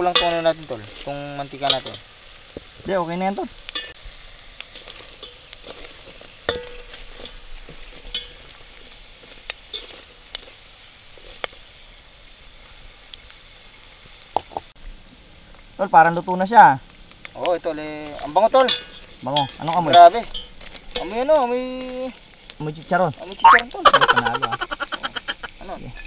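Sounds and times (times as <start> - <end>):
metal utensil scraping pot: 0.0 - 2.1, 3.6 - 4.0, 4.7 - 9.0, 9.6 - 10.6, 18.0 - 22.2
food deep-frying in oil: 0.0 - 26.0.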